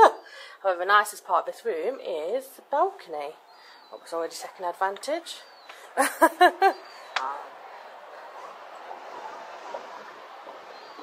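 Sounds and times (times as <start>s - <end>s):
distant traffic hiss: 1.8s - 11.0s.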